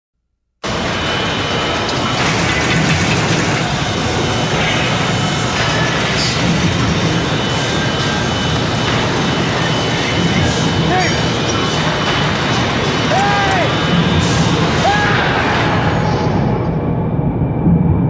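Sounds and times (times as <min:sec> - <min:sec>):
factory machinery din: 0:00.6 - 0:18.0.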